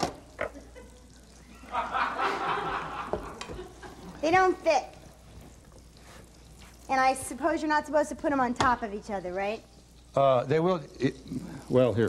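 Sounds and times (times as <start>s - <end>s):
people laughing: 0.7s - 4.2s.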